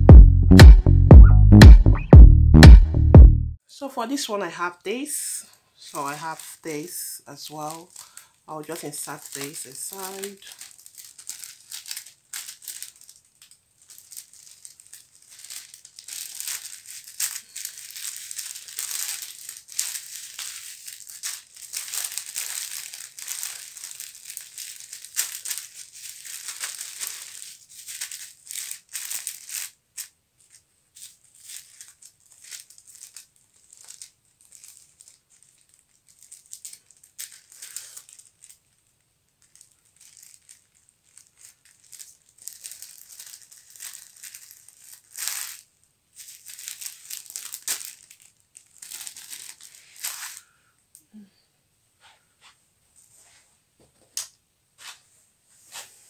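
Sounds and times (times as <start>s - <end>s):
plastic and bubble wrap crinkling: 5.8s - 50.8s, 54.8s - 56.0s.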